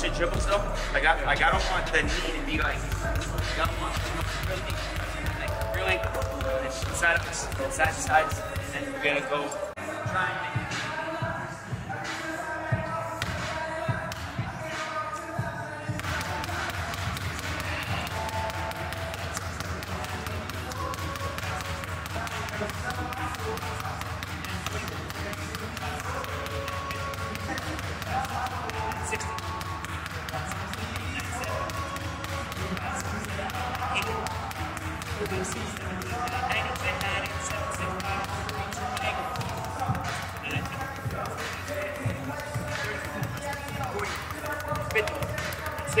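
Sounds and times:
background music: 0.0 - 46.0
basketball bouncing on hardwood floor: 2.6 - 8.8, 38.0 - 46.0.

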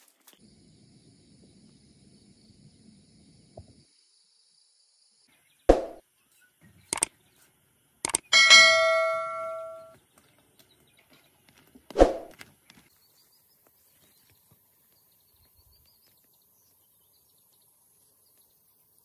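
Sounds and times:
faint bird or insect chirps: 0.3 - 8.3, 12.8 - 19.0
bright bell ding: 8.4 - 9.9.

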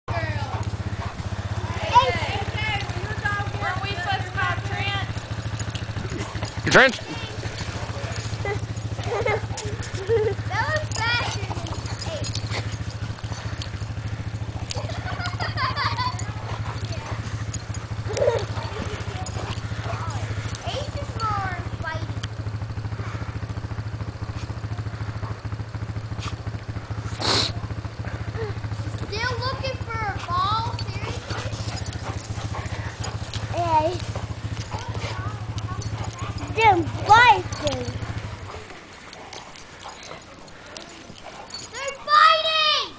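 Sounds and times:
steady low hum: 0.1 - 42.9
dogs whining and yelping: 5.0 - 21.2, 30.6 - 42.1.

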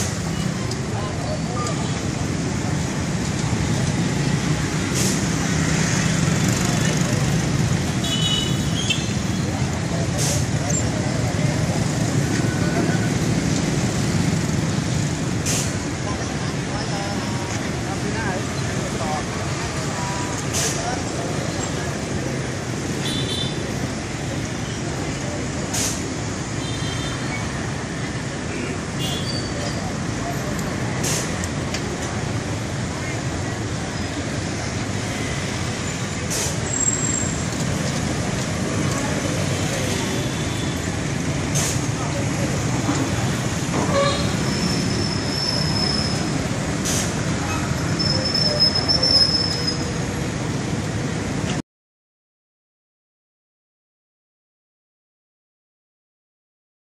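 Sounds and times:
motorbike and car traffic: 0.0 - 51.6
short hiss: 4.9 - 5.3, 15.4 - 15.8, 25.7 - 26.1, 31.0 - 31.4, 36.3 - 36.7, 46.8 - 47.2
short hisses: 25.7 - 26.0.

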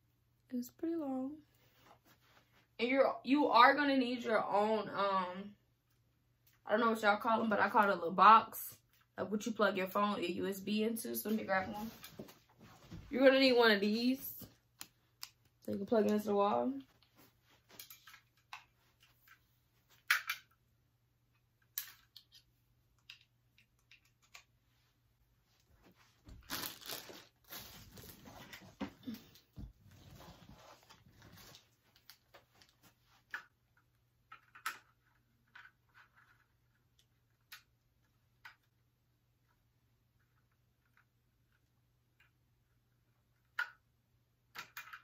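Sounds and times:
rustling and crinkling: 11.2 - 13.4, 15.9 - 20.1, 23.9 - 33.5.

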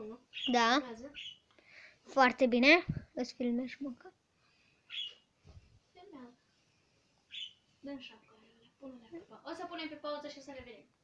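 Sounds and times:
budgerigar chirp: 0.3 - 1.4, 4.9 - 5.2, 7.3 - 7.6.

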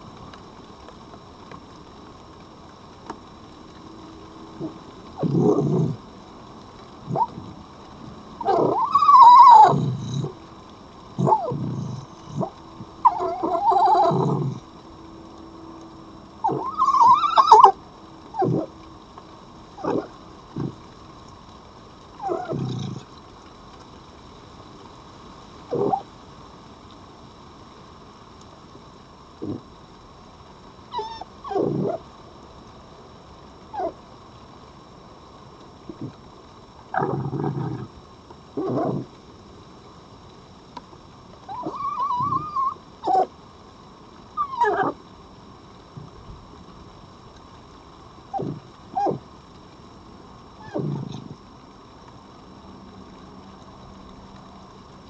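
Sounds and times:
foxes calling: 4.6 - 6.0, 7.0 - 7.6, 8.4 - 10.4, 11.1 - 14.6, 16.4 - 18.7, 19.8 - 20.8, 22.2 - 23.1, 25.7 - 26.1, 29.4 - 29.6, 30.9 - 32.0, 33.7 - 34.0, 36.9 - 37.9, 38.6 - 39.1, 41.5 - 43.3, 44.4 - 45.0, 48.3 - 49.2, 50.6 - 51.4.

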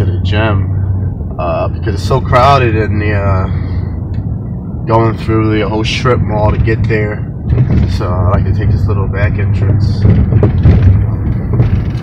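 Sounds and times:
road and engine rumble: 0.0 - 12.0
dull thuds: 7.4 - 8.5, 9.6 - 12.0.

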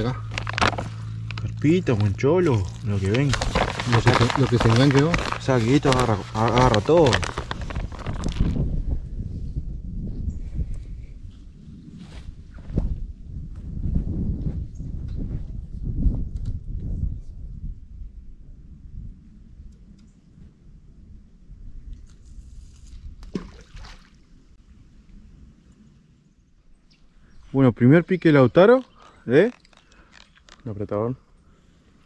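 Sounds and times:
low rumble: 0.0 - 11.8.

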